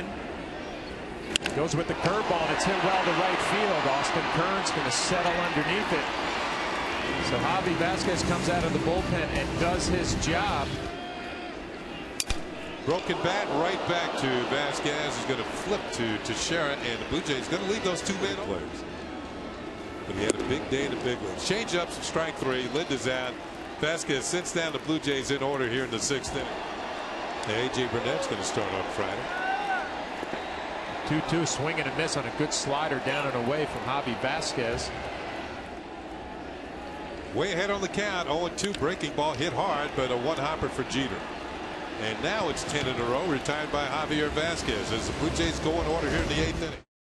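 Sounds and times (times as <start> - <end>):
wooden bat cracking: 12.2 - 13.1.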